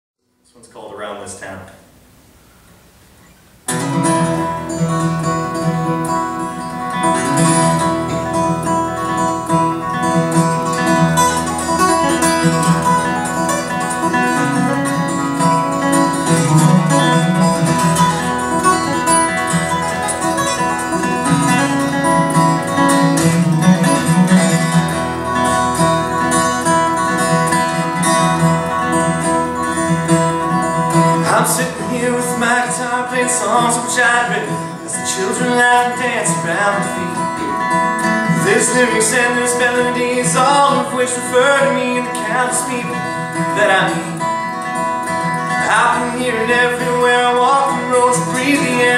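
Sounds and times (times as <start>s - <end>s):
acoustic guitar playing: 2.4s - 48.9s.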